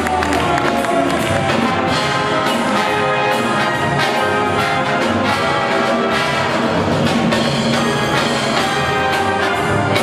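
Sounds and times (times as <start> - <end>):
jazz big band playing: 0.0 - 10.0
trumpets and trombones: 0.0 - 10.0.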